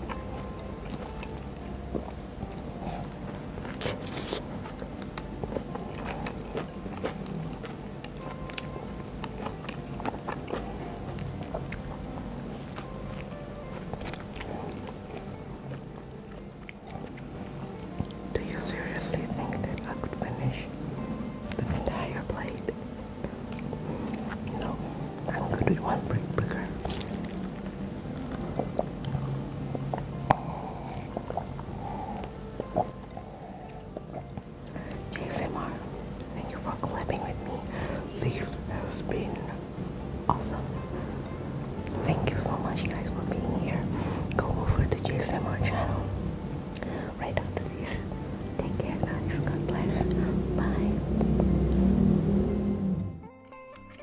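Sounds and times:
person chewing food: 0:00.0 - 0:35.4, 0:40.3 - 0:48.3
quiet background music: 0:00.0 - 0:54.0
soft whispering: 0:03.7 - 0:04.6, 0:18.3 - 0:20.8, 0:21.6 - 0:22.8, 0:23.9 - 0:27.2, 0:30.1 - 0:34.0, 0:34.7 - 0:39.6, 0:40.3 - 0:40.7, 0:42.0 - 0:46.2, 0:46.8 - 0:51.1.

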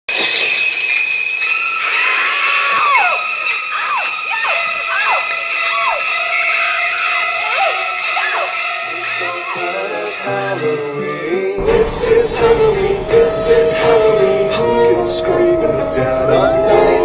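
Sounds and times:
eerie soundtrack with swooping tones: 0:11.6 - 0:17.0.

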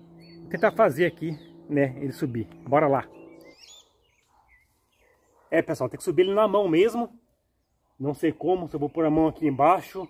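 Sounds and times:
faint bird chirps: 0:00.0 - 0:05.6.

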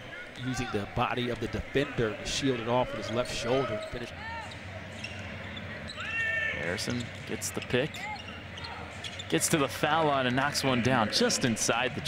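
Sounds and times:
sneaker squeak on court: 0:03.8 - 0:06.2, 0:06.8 - 0:09.4.

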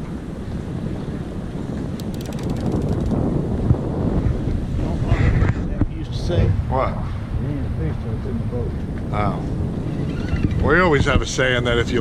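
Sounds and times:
wind buffeting microphone: 0:00.0 - 0:12.0
rapid faint clicks: 0:02.0 - 0:03.2.

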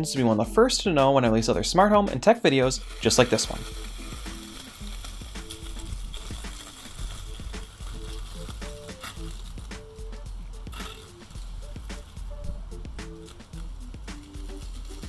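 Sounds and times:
steady low bass: 0:09.2 - 0:10.8, 0:11.4 - 0:15.0.

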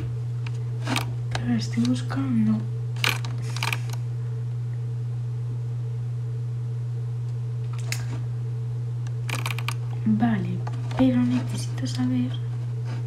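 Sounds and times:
low hum: 0:00.0 - 0:13.0.

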